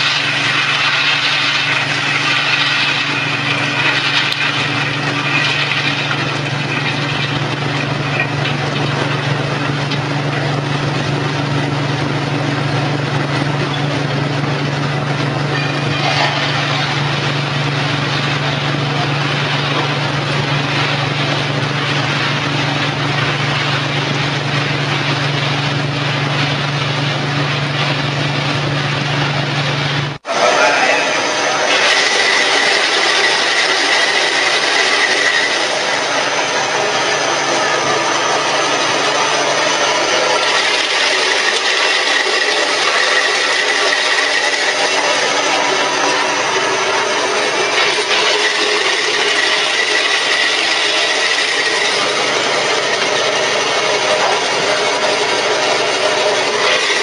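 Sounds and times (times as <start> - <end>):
machine grinding and rubbing: 0.0 - 57.0
motor hum: 0.0 - 57.0.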